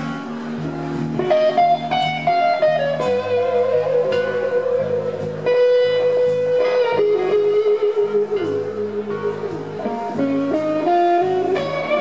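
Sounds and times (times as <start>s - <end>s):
bass guitar: 0.0s - 12.0s
drums: 0.0s - 12.0s
electric guitar solo: 0.0s - 12.0s.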